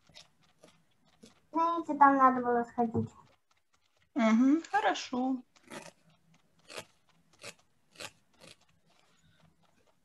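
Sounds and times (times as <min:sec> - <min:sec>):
felting needles stabbing foam: 0:00.0 - 0:10.0.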